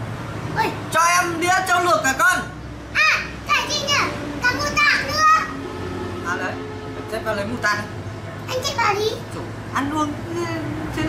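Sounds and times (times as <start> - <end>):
child talking: 0.6 - 0.8, 2.9 - 5.6, 8.4 - 9.5.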